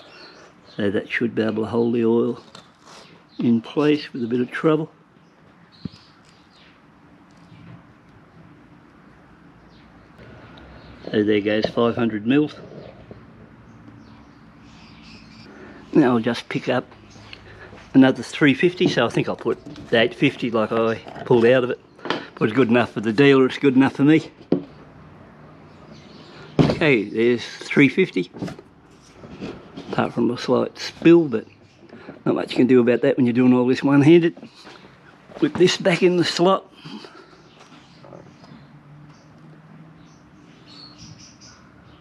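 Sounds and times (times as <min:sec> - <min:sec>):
man talking: 0:00.8 - 0:02.5, 0:03.4 - 0:05.0, 0:11.1 - 0:12.7, 0:15.9 - 0:17.0, 0:17.9 - 0:21.8, 0:22.4 - 0:24.4, 0:26.6 - 0:28.5, 0:29.9 - 0:31.5, 0:32.2 - 0:34.5, 0:35.4 - 0:37.0.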